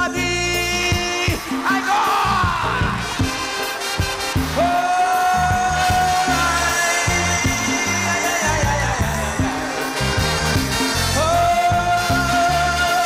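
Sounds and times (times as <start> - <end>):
live calypso band playing: 0.0 - 13.0
bouncing bass line: 5.4 - 12.9.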